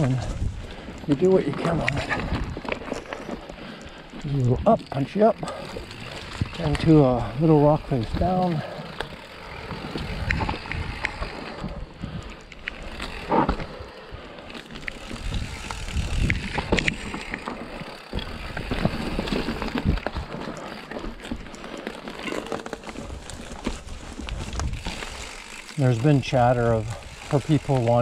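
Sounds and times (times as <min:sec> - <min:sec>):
bike rattling and knocking: 0:00.0 - 0:28.0
bike tyres crunching over rock: 0:00.0 - 0:28.0.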